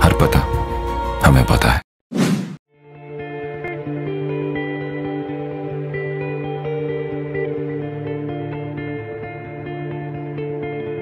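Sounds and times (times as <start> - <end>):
soft ambient music: 2.8 - 11.0.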